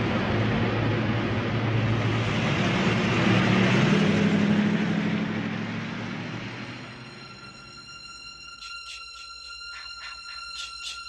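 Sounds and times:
van driving past: 0:00.0 - 0:08.2.

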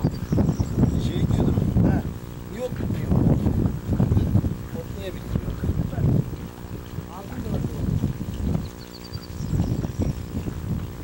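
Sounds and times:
steady low hum: 0:00.0 - 0:11.0
wind buffeting microphone: 0:00.0 - 0:11.0.

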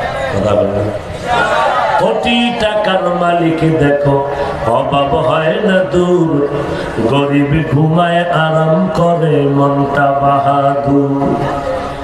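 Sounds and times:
man chanting: 0:02.0 - 0:11.7.

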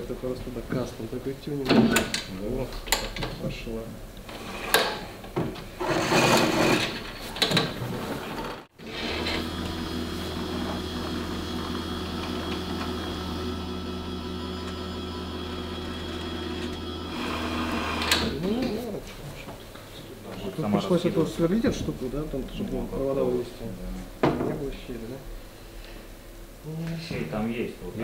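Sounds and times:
winch motor humming: 0:08.7 - 0:18.9.

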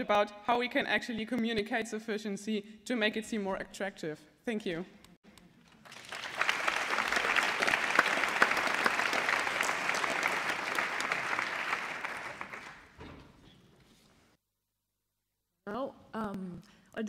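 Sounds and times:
crowd applauding: 0:05.7 - 0:13.0.

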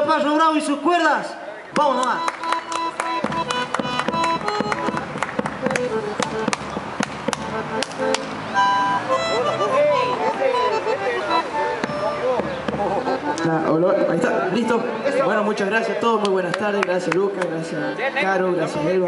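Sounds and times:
bandoneon: 0:02.2 - 0:06.7, 0:07.3 - 0:15.1
drum struck with sticks: 0:11.8 - 0:13.1.

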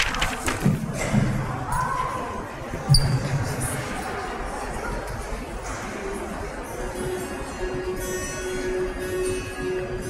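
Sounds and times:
large hall background: 0:00.0 - 0:10.0.

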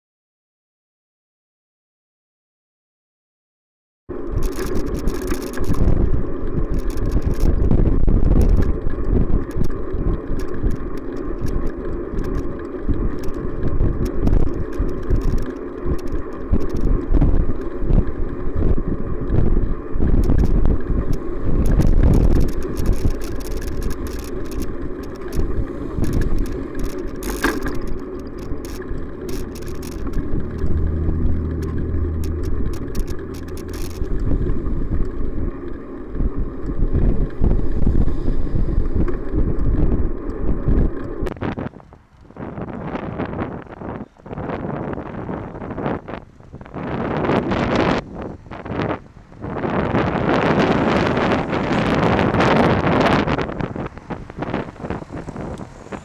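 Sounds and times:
low engine hum: 0:04.1 - 0:41.4
bike rattles and knocks: 0:04.1 - 0:43.0
wind and road rumble: 0:04.1 - 0:56.0
motor traffic passing: 0:08.6 - 0:41.0, 0:47.0 - 0:56.0
van passing close: 0:28.9 - 0:35.0.

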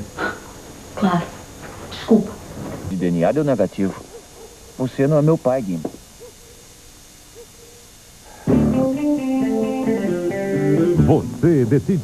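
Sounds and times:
low steady hiss: 0:00.0 - 0:12.0
night bird hooting: 0:06.1 - 0:11.4.

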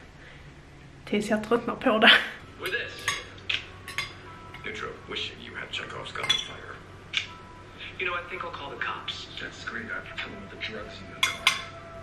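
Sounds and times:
fork and knife clinking on bowl: 0:02.6 - 0:04.7, 0:06.1 - 0:06.7, 0:11.2 - 0:11.8.

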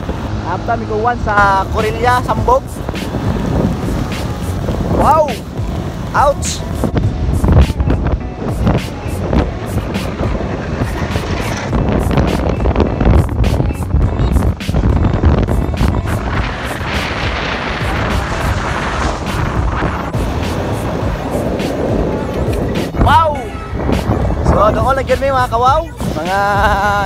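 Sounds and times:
motorcycle engine: 0:00.0 - 0:24.5
road noise: 0:00.0 - 0:27.0
wind buffeting microphone: 0:00.0 - 0:27.0.

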